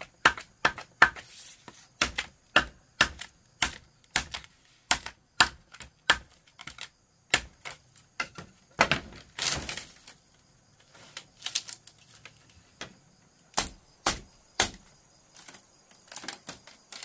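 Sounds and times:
machete splitting bamboo: 0.0 - 10.2, 10.9 - 12.4, 13.5 - 17.0.

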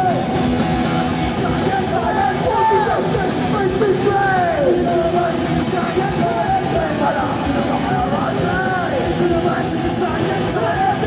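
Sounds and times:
man singing shouted vocals: 0.0 - 0.4, 1.0 - 11.0
punk rock band playing live: 0.0 - 11.0.

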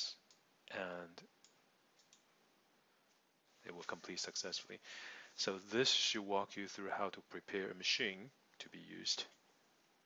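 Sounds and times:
computer mouse clicks: 1.4 - 2.3.

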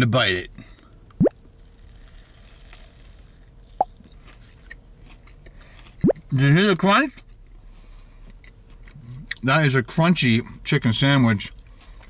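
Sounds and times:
crunching and chewing: 1.4 - 6.4, 7.1 - 9.5, 11.2 - 12.0.

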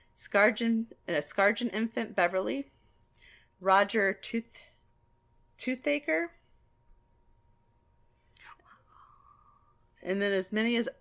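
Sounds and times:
faint whisper: 8.3 - 9.8.

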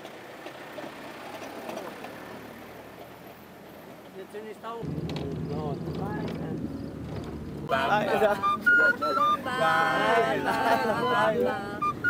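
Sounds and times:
van engine humming: 0.0 - 12.0
distant voices: 0.4 - 12.0.

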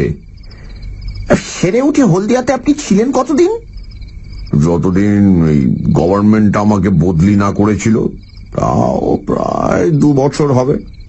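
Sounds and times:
faint high chirping: 0.0 - 11.0.

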